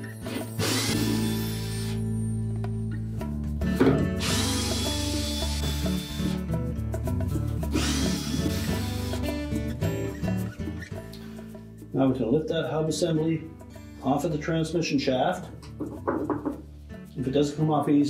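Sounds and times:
cordless drill whining: 0.0s - 2.0s, 4.2s - 6.4s, 7.7s - 10.6s.

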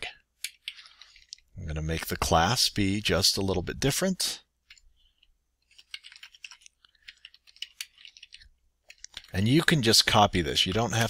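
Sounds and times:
computer keyboard typing: 5.6s - 9.6s.

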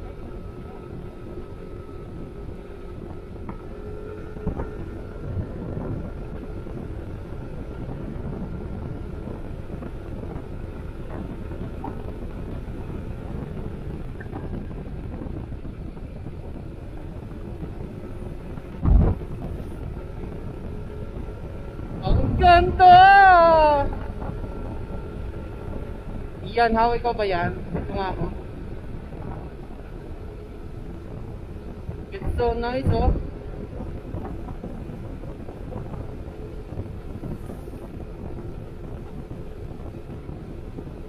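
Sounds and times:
faint steady whine: 0.0s - 41.0s
wind rushing over microphone: 0.0s - 41.0s
loud thump: 18.8s - 19.2s.

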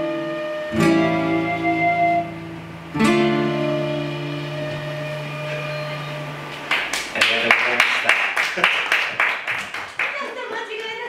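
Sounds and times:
bamboo flute holding a note: 0.0s - 6.4s
acoustic guitar chord ringing: 0.0s - 7.2s
applause: 6.6s - 11.0s.

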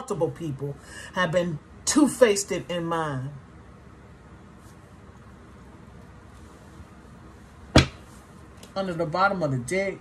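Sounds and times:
sharp knock: 7.7s - 8.0s.

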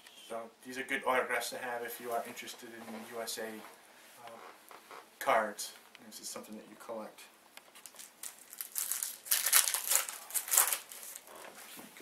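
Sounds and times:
foil wrapper crinkling: 7.6s - 11.4s.

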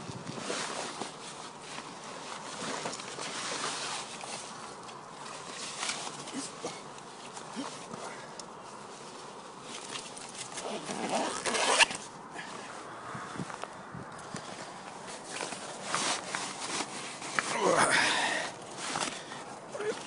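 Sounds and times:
clothing rustling: 0.0s - 13.8s, 14.4s - 20.0s.

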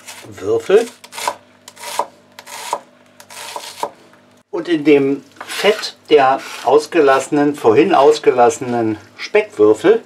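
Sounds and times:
knife chopping on wooden board: 1.1s - 4.0s.

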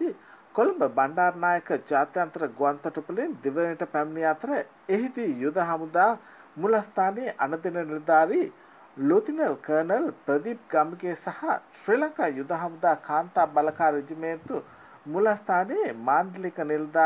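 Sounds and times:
person narrating: 0.0s - 17.0s.

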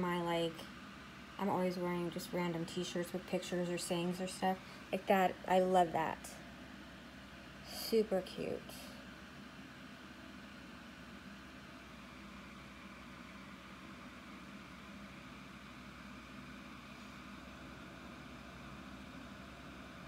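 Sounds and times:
room hum and hiss: 0.0s - 20.0s.

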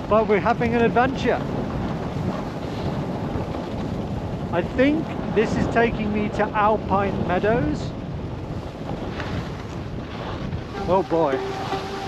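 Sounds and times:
skis sliding over snow: 0.0s - 12.0s
wind rushing over microphone: 0.0s - 12.0s.

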